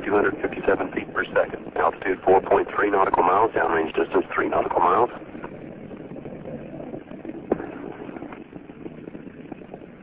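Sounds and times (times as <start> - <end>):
line noise hiss: 0.0 - 10.0.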